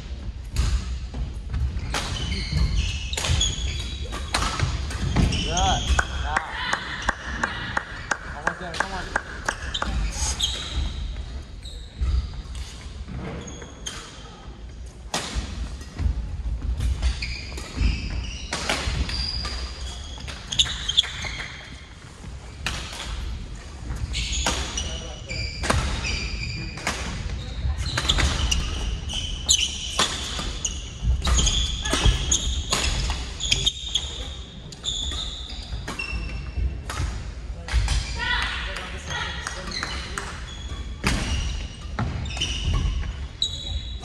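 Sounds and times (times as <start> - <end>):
shoes squeaking on floor: 1.5 - 6.0, 9.5 - 14.4, 17.0 - 22.0, 23.9 - 36.8, 39.1 - 44.0.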